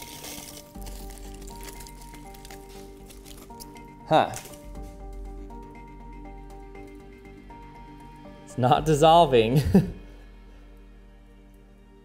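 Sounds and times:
background music of held notes: 0.0s - 12.0s.

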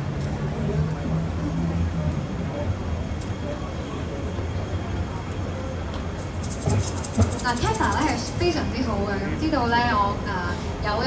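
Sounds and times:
faint indistinct voices: 0.0s - 11.0s
low rumble in large hall: 0.0s - 11.0s.

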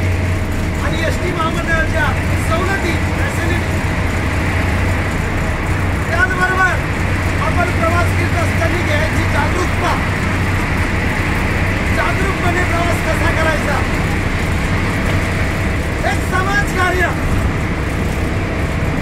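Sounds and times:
bus engine drone: 0.0s - 19.0s
road noise: 0.0s - 19.0s
person speaking: 11.8s - 14.8s.

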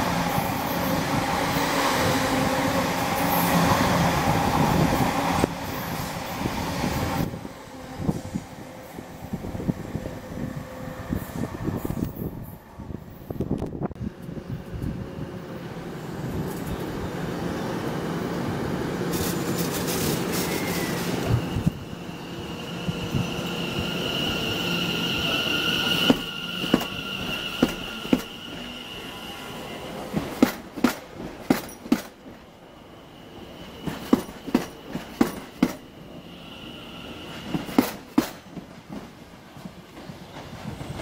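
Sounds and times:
train rumble: 0.0s - 32.7s
wheel squeal: 20.3s - 29.8s.

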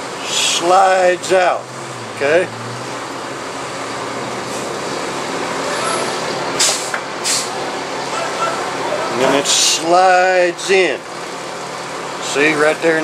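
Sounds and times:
short hisses: 5.8s - 7.6s.

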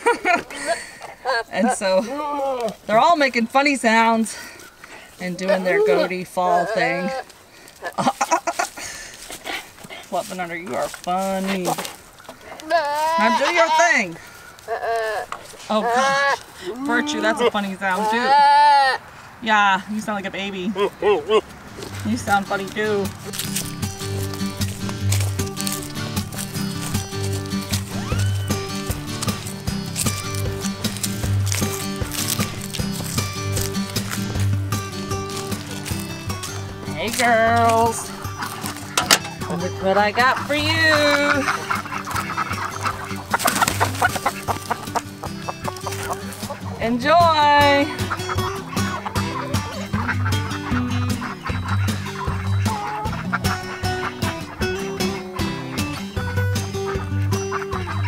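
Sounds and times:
goats clucking and sputtering: 0.0s - 19.2s, 20.7s - 58.0s
background music with steady beat: 22.1s - 58.0s.

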